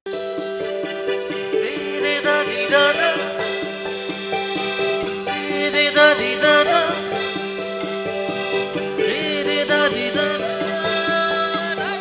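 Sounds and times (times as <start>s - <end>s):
melodic line bending in pitch: 0.1s - 12.0s.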